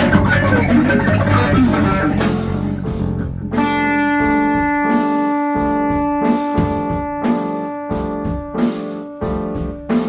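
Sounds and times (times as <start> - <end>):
bass: 0.0 - 10.0
drums: 0.0 - 10.0
electric guitar: 0.0 - 10.0.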